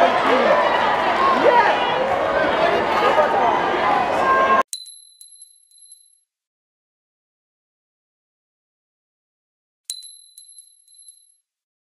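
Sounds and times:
high bell ding: 9.9s - 11.4s.

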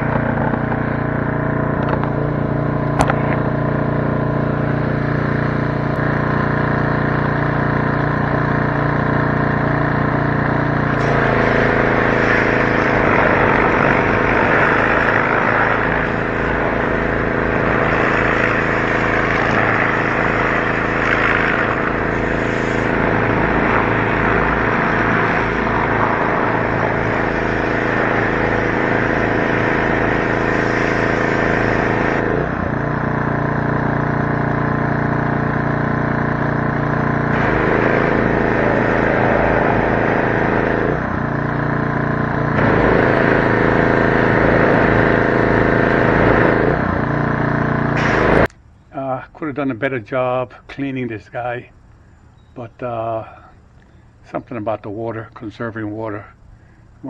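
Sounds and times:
low steady hum: 0.0s - 57.0s
hose spraying water: 4.6s - 48.5s.

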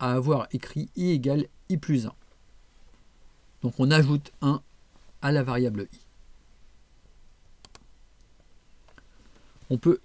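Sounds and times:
computer mouse clicks: 7.6s - 8.3s.

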